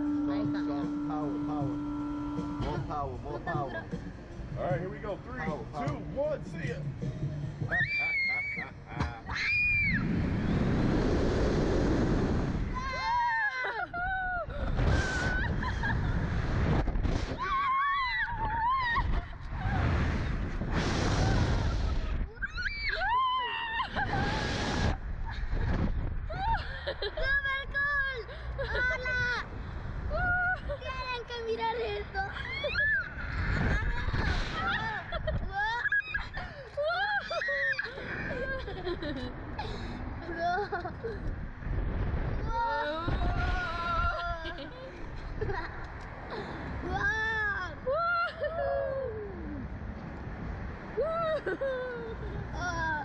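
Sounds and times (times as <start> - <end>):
people laughing and shrieking: 7.7 - 10.0, 12.7 - 16.4, 17.4 - 19.9, 21.2 - 25.5, 32.2 - 39.3, 42.5 - 45.8, 47.8 - 49.6, 51.0 - 53.0
wind rushing over microphone: 9.2 - 53.0.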